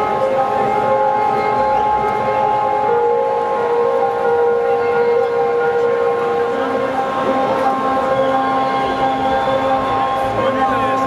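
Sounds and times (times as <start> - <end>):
crowd noise: 0.0 - 11.0
sustained synthesizer chords: 0.0 - 11.0.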